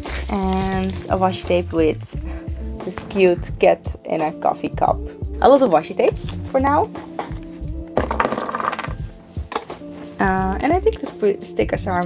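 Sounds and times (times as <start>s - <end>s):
plastic packaging crinkling: 0.0s - 2.2s
background music: 0.0s - 12.0s.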